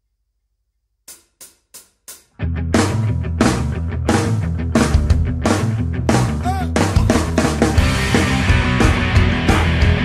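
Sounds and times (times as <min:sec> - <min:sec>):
hi-hat taps: 0:01.1 - 0:02.4.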